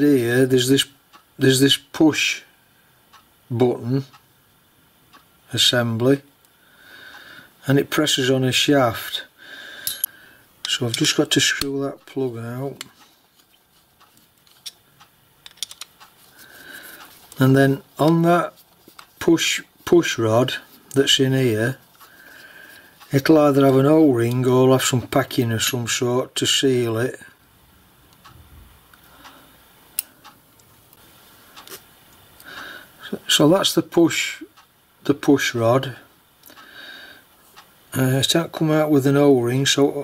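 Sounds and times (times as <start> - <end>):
soft hiss: 0.0 - 40.0
small metal parts clicking: 9.8 - 11.1, 15.4 - 16.0.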